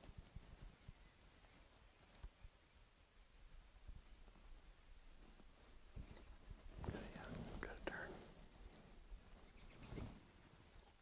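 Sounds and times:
person whispering: 0:06.8 - 0:08.4.

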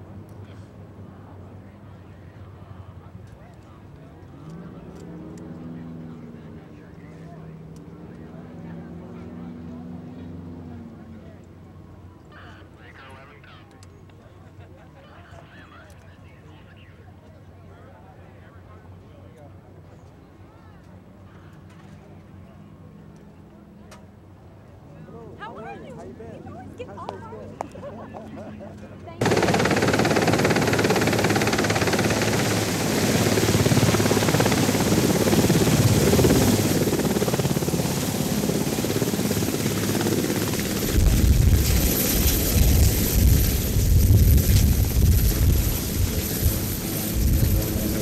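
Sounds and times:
people talking outdoors: 0:00.0 - 0:44.0
helicopter rotor chopping: 0:29.2 - 0:48.0
turbine engines running: 0:29.2 - 0:48.0.

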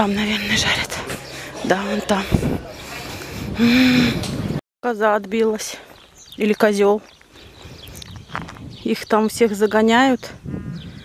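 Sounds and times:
footsteps scuffing on gravel: 0:05.8 - 0:08.7
short crunch: 0:07.0 - 0:08.7.

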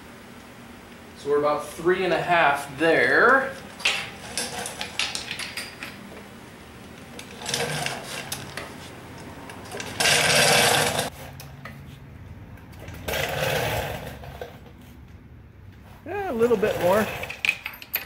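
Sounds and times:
rough mechanical gear bursts: 0:09.8 - 0:11.1, 0:13.0 - 0:14.2.

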